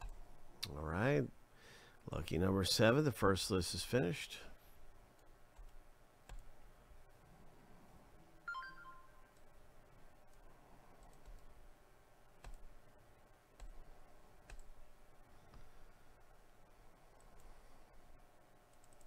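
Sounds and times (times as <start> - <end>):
computer mouse clicks: 0.0 - 0.2, 5.1 - 6.5, 10.3 - 11.6, 12.4 - 12.7, 13.6 - 13.8, 14.4 - 14.8, 17.2 - 17.6, 18.7 - 19.0
electronic chime: 8.5 - 9.3.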